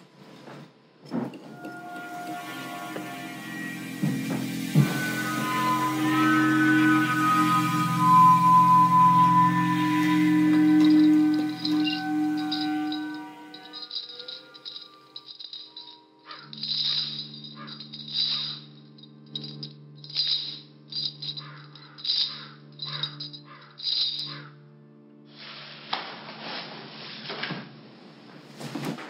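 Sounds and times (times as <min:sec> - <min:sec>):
droning tones: 0:01.4 - 0:24.8
low sustained chord: 0:01.4 - 0:27.1
high rattling buzz: 0:01.8 - 0:24.5.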